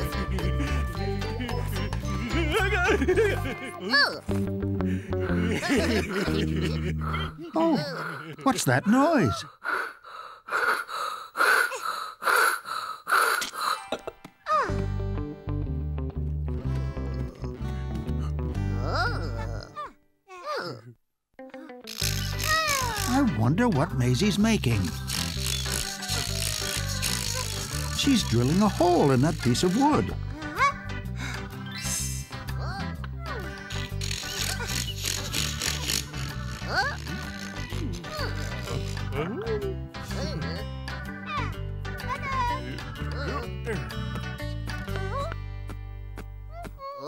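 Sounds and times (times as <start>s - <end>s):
cartoon background music: 0.0s - 7.8s, 21.4s - 47.0s
handsaw cutting wood: 21.9s - 23.3s, 24.7s - 30.1s, 33.5s - 39.2s
short gliding squeaks: 25.0s - 27.7s.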